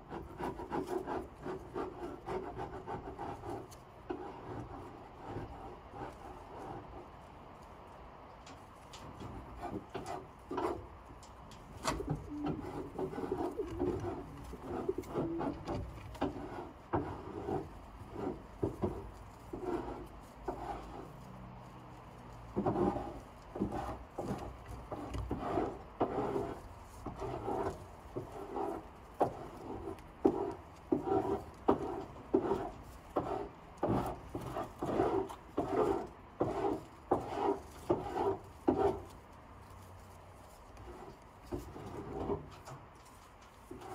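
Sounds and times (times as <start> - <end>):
scraping strokes on wood: 0.0 - 43.9
pigeons cooing: 12.0 - 15.7.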